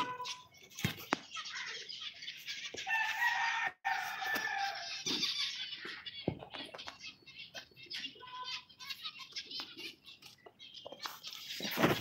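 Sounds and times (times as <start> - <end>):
rooster crowing: 2.9 - 4.8.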